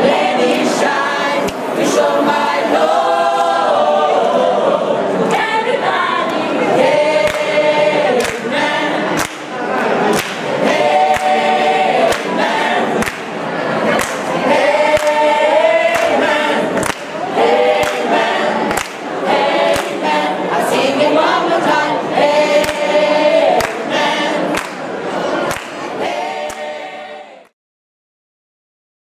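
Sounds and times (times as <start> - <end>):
mixed choir singing: 0.0 - 27.6
people clapping in time: 7.2 - 20.9, 22.5 - 26.8.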